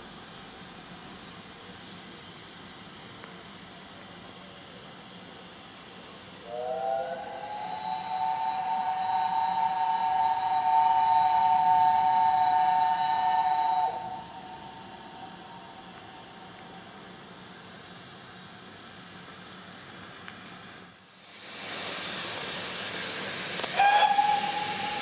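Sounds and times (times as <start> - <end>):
steam locomotive whistle: 6.4 - 15.4, 23.6 - 25.0.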